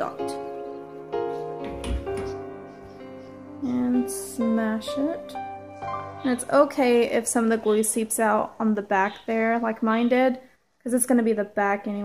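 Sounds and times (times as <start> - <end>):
soft keyboard notes: 0.0 - 7.7.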